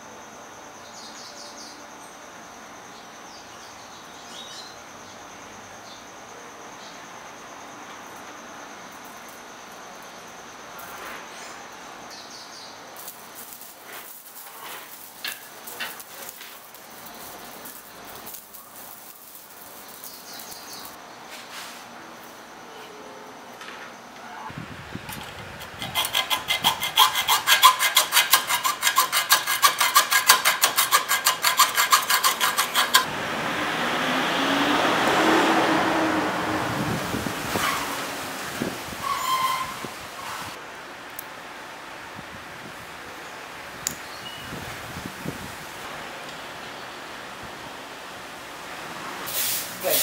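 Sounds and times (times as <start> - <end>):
hacksaw cutting metal: 13.0 - 17.8, 25.1 - 33.1.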